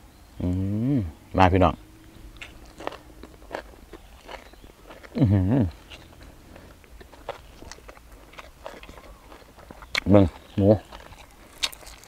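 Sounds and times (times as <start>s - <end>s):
man speaking: 0.4s - 1.8s, 10.0s - 11.0s
man chewing food: 1.8s - 12.0s
wet mouth clicks: 2.1s - 6.3s, 6.9s - 12.0s.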